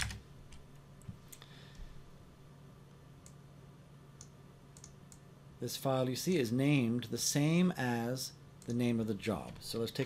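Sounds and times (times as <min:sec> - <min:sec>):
low steady hum: 0:00.0 - 0:10.0
computer mouse clicks: 0:04.2 - 0:05.2.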